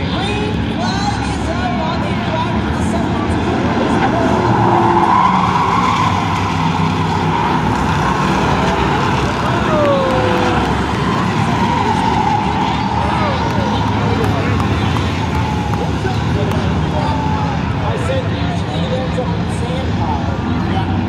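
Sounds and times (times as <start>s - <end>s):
stock car engines racing: 0.0s - 21.0s.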